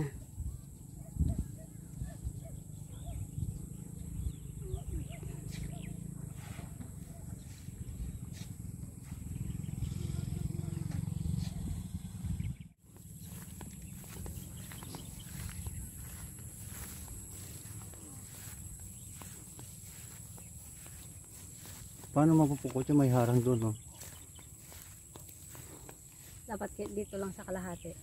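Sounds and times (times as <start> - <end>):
wind buffeting microphone: 0.3 - 5.5.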